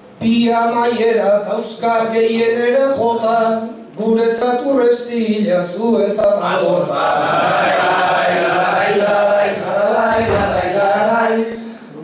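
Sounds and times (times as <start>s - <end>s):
man singing unaccompanied: 8.4s - 11.7s.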